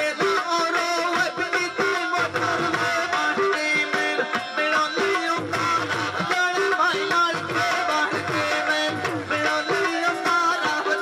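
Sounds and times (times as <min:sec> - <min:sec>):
held folk melody line: 0:00.0 - 0:11.0.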